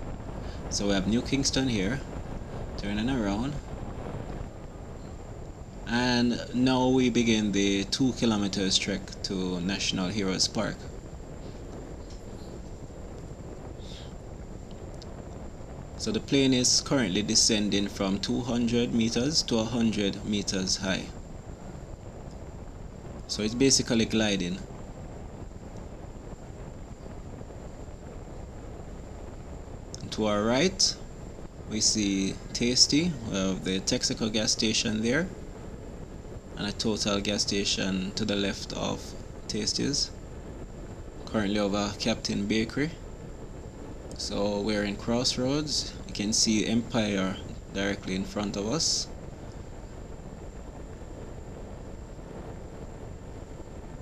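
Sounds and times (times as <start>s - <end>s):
faint high whine: 0.0s - 54.0s
wind rushing over microphone: 0.0s - 54.0s.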